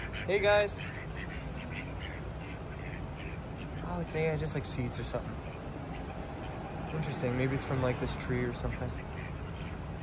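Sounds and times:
foraging in leaf litter: 0.0 - 9.8
ducks quacking quietly: 0.0 - 10.0.

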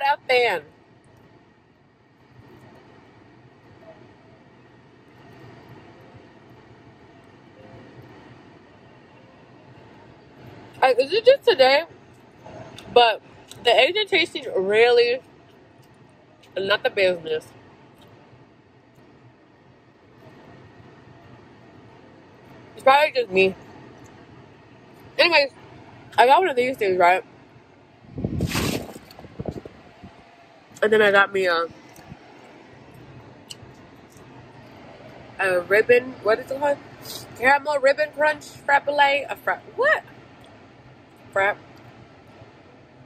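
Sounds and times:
vehicle rumble and hiss: 0.0 - 43.0.

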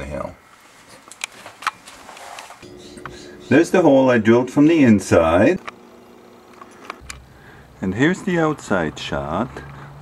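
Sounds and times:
background hum: 0.0 - 10.0.

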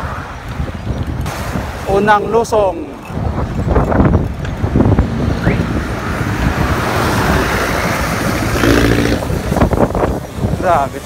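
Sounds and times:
road traffic: 0.0 - 11.0
wind rushing over microphone: 0.0 - 11.0
passing vehicle engine and tyres: 2.8 - 11.0.

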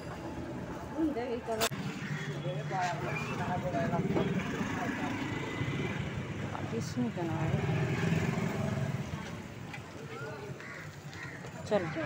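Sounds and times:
scooter and motorcycle engines: 0.0 - 12.0.

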